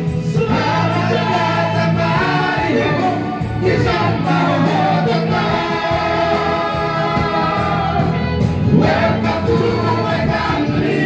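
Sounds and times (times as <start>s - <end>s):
men singing through microphones: 0.0s - 11.0s
music accompaniment: 0.0s - 11.0s.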